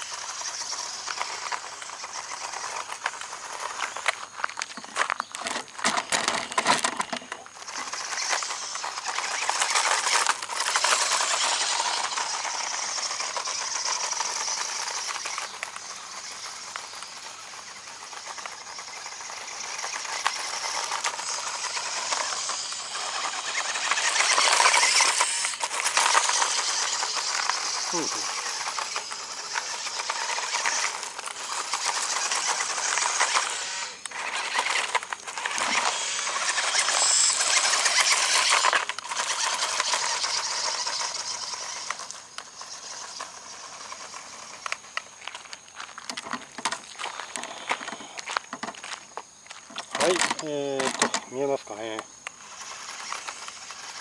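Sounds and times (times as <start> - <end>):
small electric motor whirring: 0.0 - 54.0
tyres crunching on gravel: 0.0 - 54.0.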